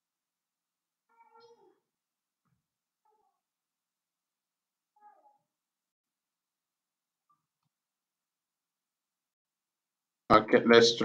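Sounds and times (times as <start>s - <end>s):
faint cat meowing: 1.0s - 1.9s, 3.0s - 3.6s, 4.9s - 5.6s.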